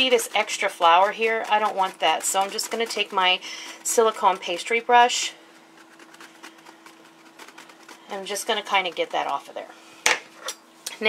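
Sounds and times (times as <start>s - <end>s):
pastry brush taps and rustles: 0.0s - 5.0s, 5.6s - 9.6s
steady low hum: 0.0s - 11.0s.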